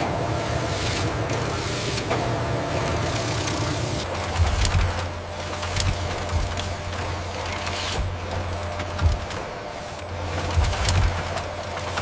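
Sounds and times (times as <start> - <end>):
machinery hum: 0.0 - 12.0.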